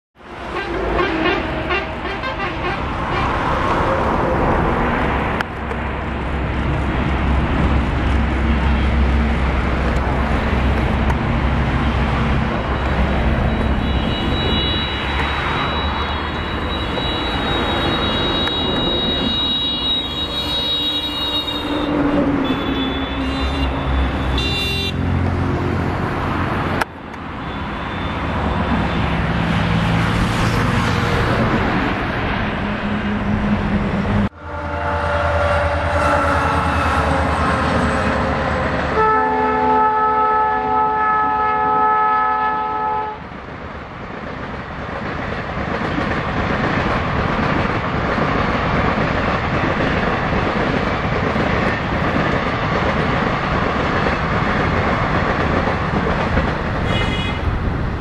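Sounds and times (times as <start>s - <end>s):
outdoor noise: 0.2s - 58.0s
passing train rumbling: 0.2s - 58.0s
train horn blast: 0.5s - 3.5s, 13.5s - 15.8s, 17.0s - 25.2s, 34.3s - 38.0s, 38.9s - 43.2s, 56.8s - 57.5s.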